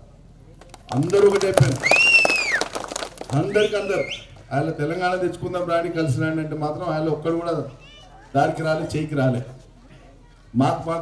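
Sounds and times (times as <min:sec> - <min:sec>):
man speaking into a microphone: 0:00.9 - 0:01.8, 0:03.3 - 0:07.8, 0:08.4 - 0:09.6, 0:10.6 - 0:11.0.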